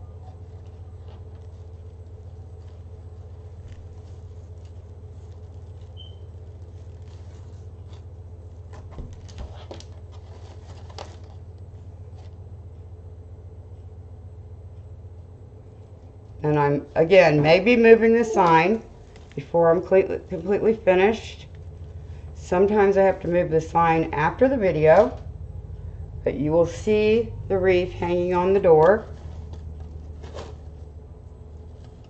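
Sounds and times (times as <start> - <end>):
faint rustling: 0.0 - 12.6, 27.9 - 32.0
steady low hum: 0.0 - 32.0.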